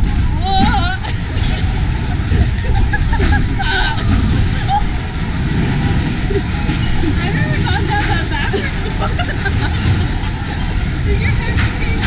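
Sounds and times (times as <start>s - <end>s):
riders' voices: 0.0s - 12.0s
roller coaster rumbling on track: 0.0s - 12.0s.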